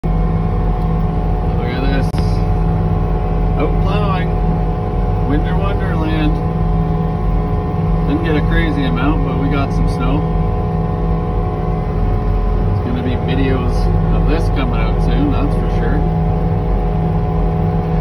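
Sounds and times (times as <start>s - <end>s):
snowplow engine droning: 0.0s - 18.0s.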